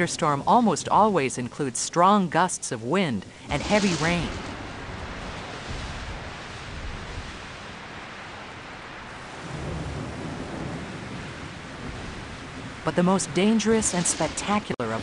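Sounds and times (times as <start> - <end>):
gusting wind: 3.0 - 15.0
heavy rain: 3.2 - 15.0
thunder rumbles: 3.4 - 15.0.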